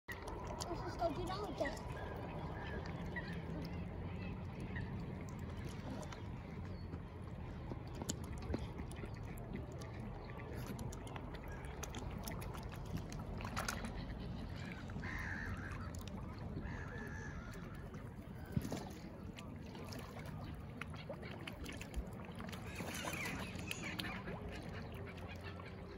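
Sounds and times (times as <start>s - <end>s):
light water splashing: 0.1s - 25.9s
low outdoor rumble: 0.1s - 25.9s
waterfowl calls: 11.4s - 19.0s.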